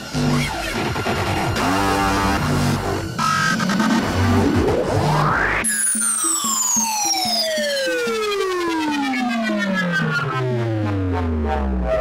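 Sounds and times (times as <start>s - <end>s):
synthesizer tone gliding downward: 1.6s - 12.0s.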